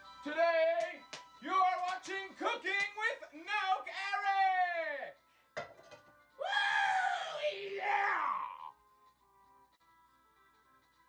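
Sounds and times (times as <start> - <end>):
man screaming: 6.4 - 8.7.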